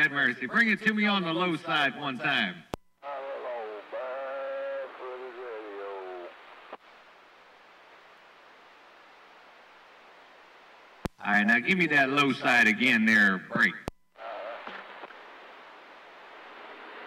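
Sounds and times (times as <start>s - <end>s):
voice over radio speaker: 0.0s - 6.8s, 11.2s - 15.1s
faint static hiss: 0.0s - 17.0s
radio click: 2.7s - 6.9s, 13.8s - 17.0s.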